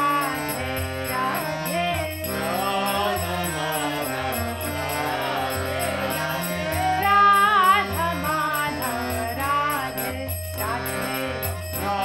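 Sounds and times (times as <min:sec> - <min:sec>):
harmonium chords: 0:00.0 - 0:12.0
man singing devotional melody: 0:00.0 - 0:12.0.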